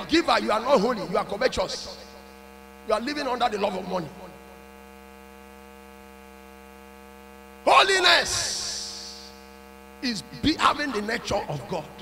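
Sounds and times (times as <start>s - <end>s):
man speaking: 0.0s - 2.0s, 2.9s - 4.3s, 7.7s - 9.3s, 10.0s - 12.0s
electrical mains hum: 0.0s - 12.0s.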